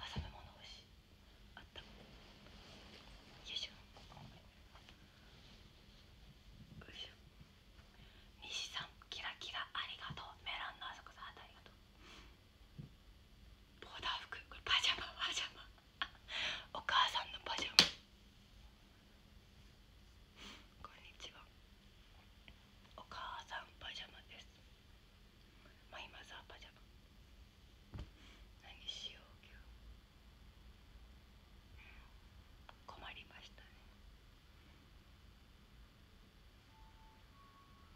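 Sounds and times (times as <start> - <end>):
woman whispering: 0.0 - 0.9, 1.5 - 2.0, 3.4 - 4.3, 6.8 - 7.2, 8.4 - 11.8, 13.8 - 15.8, 16.6 - 17.8, 20.7 - 21.5, 22.9 - 24.6, 25.6 - 26.9, 28.6 - 29.7, 31.7 - 34.0.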